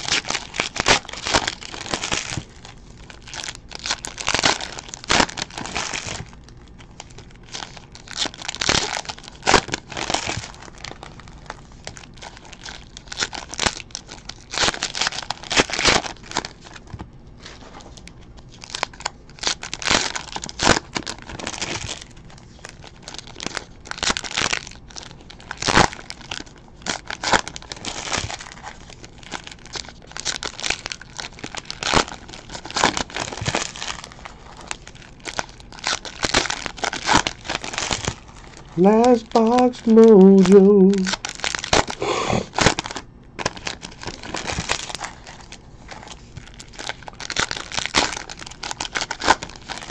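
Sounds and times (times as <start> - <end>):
card pack wrappers crinkling: 0.0 - 49.9.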